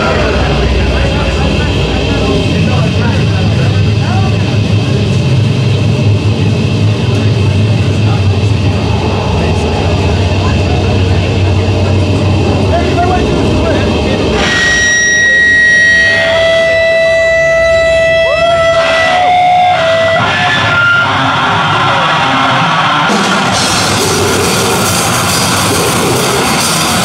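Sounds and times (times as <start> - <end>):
low rumbling drone: 0.0 - 20.7
whining feedback tones: 6.6 - 27.0.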